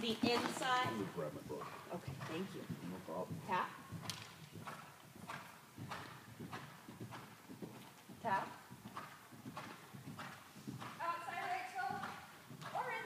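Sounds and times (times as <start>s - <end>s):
horse hoofbeats on sand: 0.0s - 13.0s.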